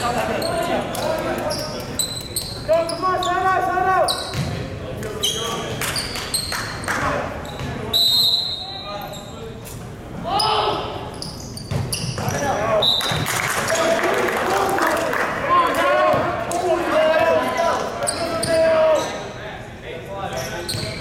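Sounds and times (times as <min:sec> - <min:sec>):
sneakers squeaking on hardwood: 0:04.1 - 0:04.6, 0:07.4 - 0:07.9, 0:11.1 - 0:12.5, 0:18.0 - 0:19.2, 0:20.3 - 0:21.0.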